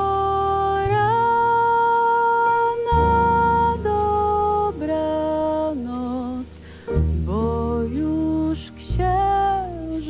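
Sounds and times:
plucked double bass: 0:00.0 - 0:10.0.

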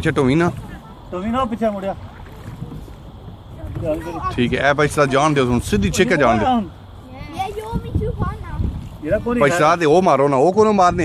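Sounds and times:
water around a rowboat: 0:00.0 - 0:11.0
wind on microphone: 0:00.0 - 0:11.0.

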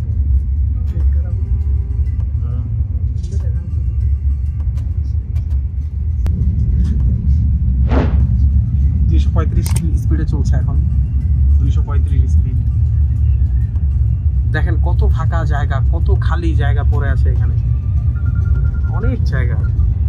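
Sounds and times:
train rumble from inside carriage: 0:00.0 - 0:20.0.

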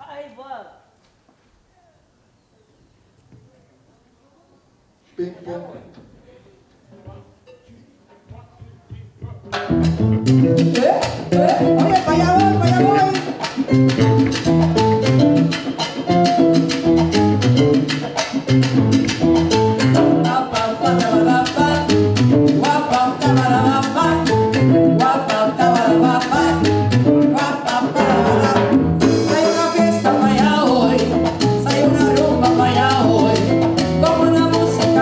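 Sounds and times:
timbales and congas: 0:06.9 - 0:35.0
electric bass: 0:09.5 - 0:27.4, 0:28.1 - 0:35.0.

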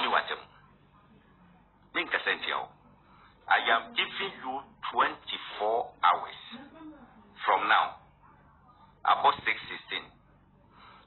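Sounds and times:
man speaking: 0:00.0 - 0:00.5, 0:02.0 - 0:02.8, 0:03.5 - 0:06.6, 0:07.4 - 0:08.0, 0:09.0 - 0:10.2.

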